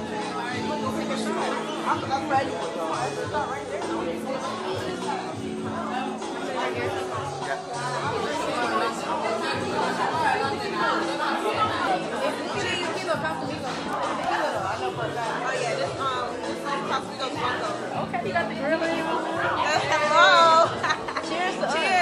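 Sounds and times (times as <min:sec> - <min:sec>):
people chattering: 0:00.0 - 0:22.0.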